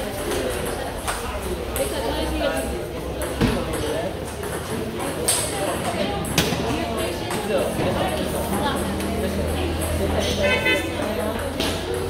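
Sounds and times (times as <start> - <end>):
indoor chatter: 0.0 - 12.0.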